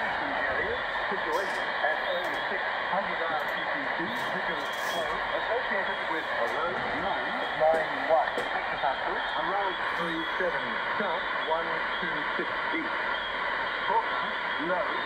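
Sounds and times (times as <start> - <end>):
narrow-band radio voice: 0.0 - 13.2, 13.8 - 15.0
adjacent radio station bleeding through: 0.0 - 15.0
radio static hiss: 0.0 - 15.0.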